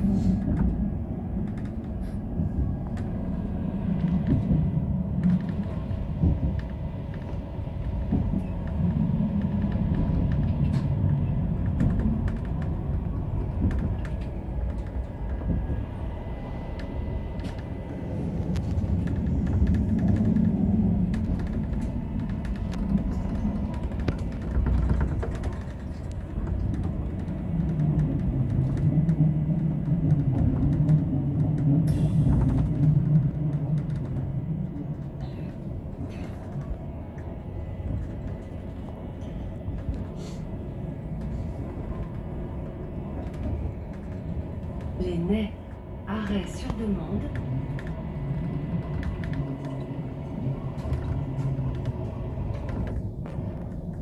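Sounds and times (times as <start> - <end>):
electric train rumbling on track: 0.0 - 54.0.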